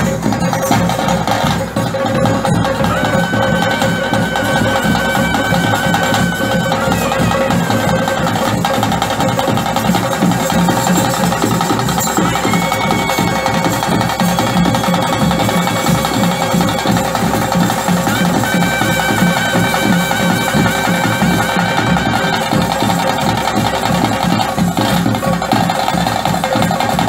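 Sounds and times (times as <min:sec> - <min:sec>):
ensemble drumming: 0:00.0 - 0:27.0
wind instrument wavering notes: 0:02.5 - 0:08.8, 0:10.7 - 0:23.7.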